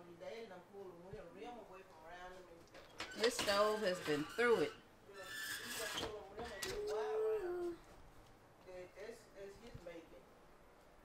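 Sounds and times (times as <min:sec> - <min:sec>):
quiet voices: 0:05.6 - 0:08.0.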